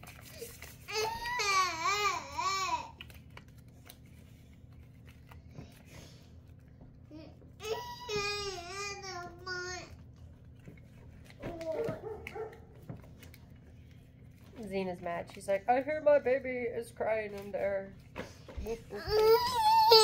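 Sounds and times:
toddler crying: 0.9s - 3.0s, 7.6s - 9.9s, 18.9s - 20.0s.

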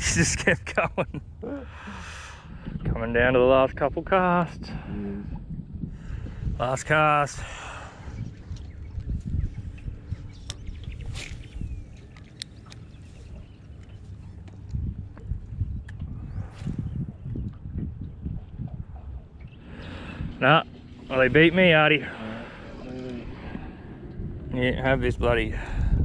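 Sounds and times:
wind rumble: 0.0s - 26.0s
waves lapping against boat: 7.3s - 24.5s.

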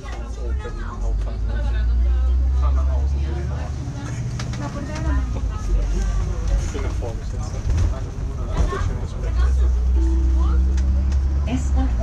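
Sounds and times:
bus engine rumble: 0.0s - 12.0s
people talking: 0.0s - 12.0s.

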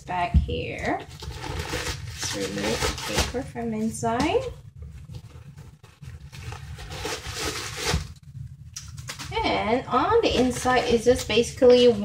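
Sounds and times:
paper rustling and crinkling: 1.0s - 3.6s, 4.8s - 8.2s, 8.8s - 9.4s.

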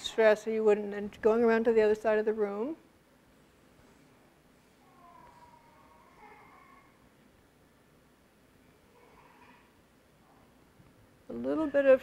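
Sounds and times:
faint high voice: 4.8s - 7.0s, 8.9s - 9.8s.

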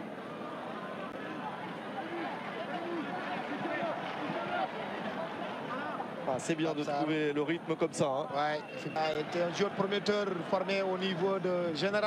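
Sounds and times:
stadium crowd din: 0.0s - 12.0s.

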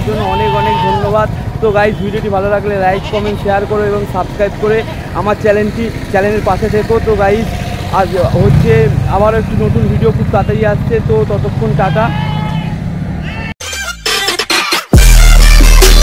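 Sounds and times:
man talking: 0.0s - 12.2s.

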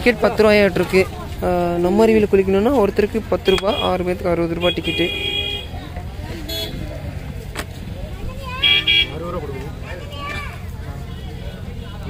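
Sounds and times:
voices: 0.0s - 12.0s
vehicle horn toots: 3.4s - 4.0s, 4.6s - 5.8s, 6.4s - 6.8s, 8.6s - 9.2s.

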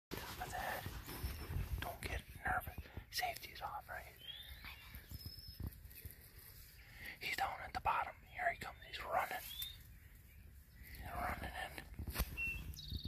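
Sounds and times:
person whispering close to microphone: 0.2s - 1.0s, 1.7s - 5.1s, 7.0s - 9.7s, 10.9s - 12.1s.

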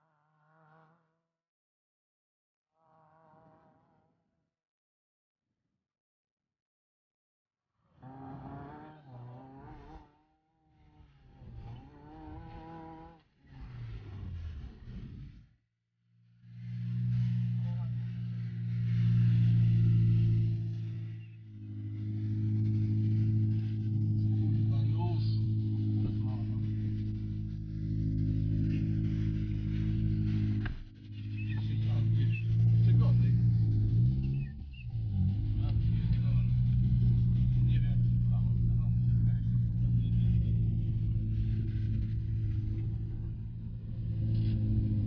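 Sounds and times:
car engine running from inside cabin: 16.5s - 45.0s.

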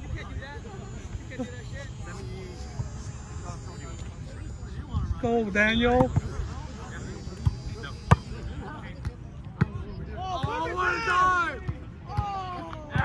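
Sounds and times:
players shouting: 9.9s - 13.0s.

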